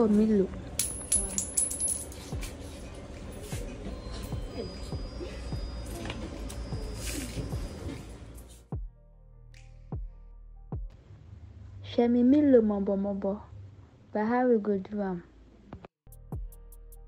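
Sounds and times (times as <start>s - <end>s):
music: 2.2s - 13.9s, 15.7s - 17.0s.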